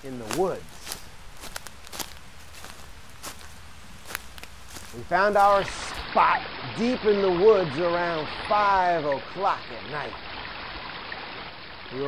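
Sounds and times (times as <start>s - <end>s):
footsteps: 0.0s - 6.1s
background hiss: 0.0s - 12.0s.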